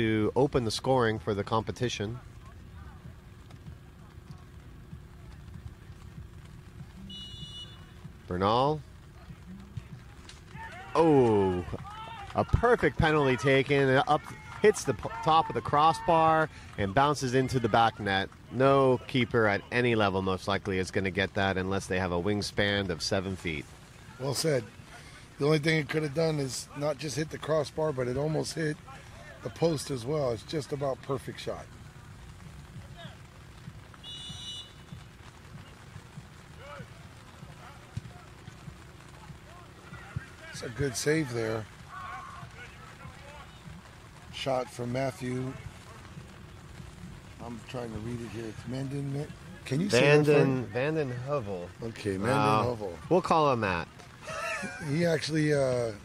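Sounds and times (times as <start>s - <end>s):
low steady rumble: 0.0s - 53.0s
faint distant voices: 1.4s - 20.6s, 22.2s - 56.0s
players shouting: 5.3s - 55.4s
referee's whistle blast: 7.0s - 7.9s, 34.0s - 35.0s.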